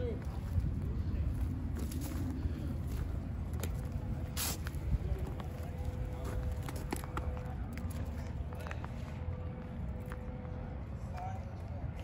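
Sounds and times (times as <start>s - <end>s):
short hiss or scuff: 4.4s - 4.7s.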